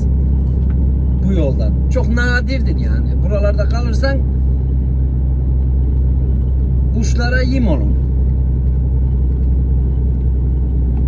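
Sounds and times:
road noise: 0:00.0 - 0:11.0
truck engine droning: 0:00.0 - 0:11.0.

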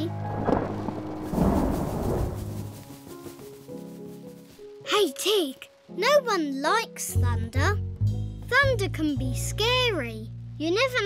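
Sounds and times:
thunder rumbling: 0:00.0 - 0:03.4
soft background music: 0:00.0 - 0:11.0.

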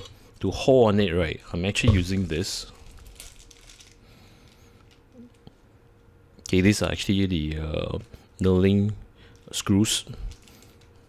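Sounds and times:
plastic bag crinkling: 0:01.2 - 0:05.6, 0:09.2 - 0:11.0.

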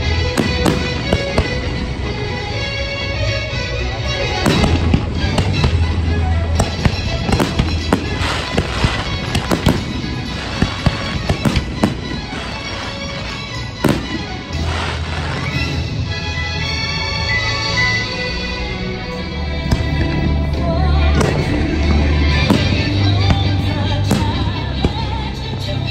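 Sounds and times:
fireworks bursting and crackling: 0:00.0 - 0:02.8, 0:04.2 - 0:16.6, 0:19.6 - 0:25.9
music soundtrack: 0:00.0 - 0:25.9.

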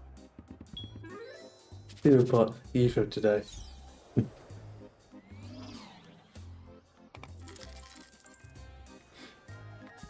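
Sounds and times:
game background music: 0:00.0 - 0:10.0
clinking coin chimes: 0:07.2 - 0:08.7.

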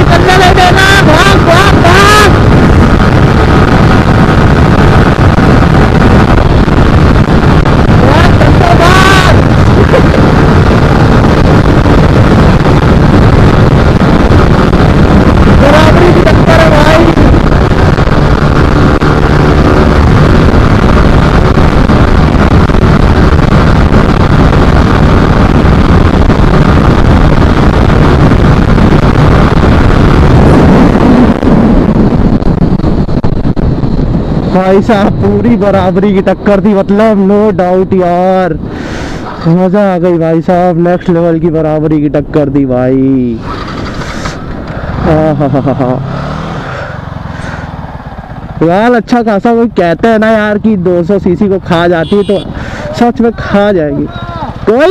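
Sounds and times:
wind rush on microphone: 0:00.0 - 0:54.9
motorcycle engine at high revs: 0:00.3 - 0:32.8, 0:43.4 - 0:49.0.

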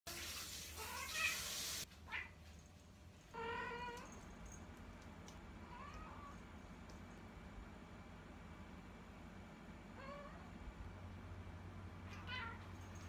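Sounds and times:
hiss: 0:00.1 - 0:01.8
cat meowing: 0:03.3 - 0:04.2, 0:12.1 - 0:12.6.

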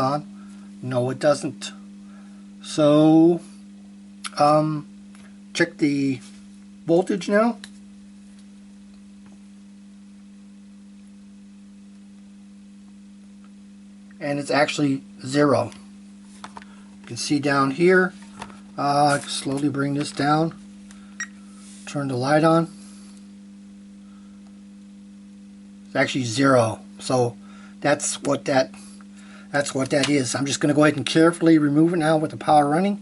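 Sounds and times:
low electrical hum: 0:00.0 - 0:33.0.

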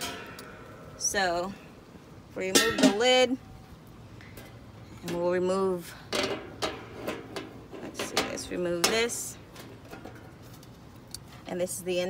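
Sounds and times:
wire rack clinking and rattling: 0:00.0 - 0:01.0.

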